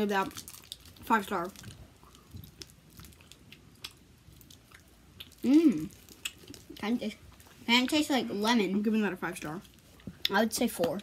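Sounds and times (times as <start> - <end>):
child chewing candy: 0.0 - 8.2.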